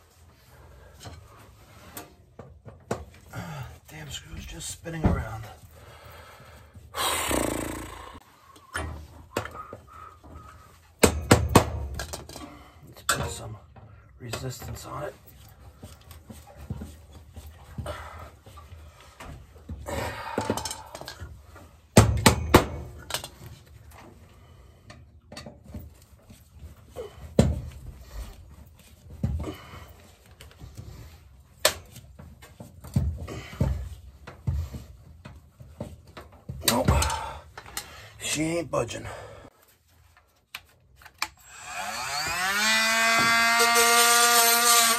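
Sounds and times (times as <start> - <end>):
heavy breathing: 3.2 - 3.9, 5.5 - 11.0, 17.5 - 21.8, 26.8 - 31.4, 36.9 - 38.3, 38.9 - 39.9.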